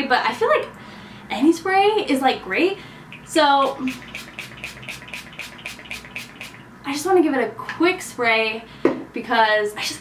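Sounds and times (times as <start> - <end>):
spray bottle hissing: 3.8 - 6.6.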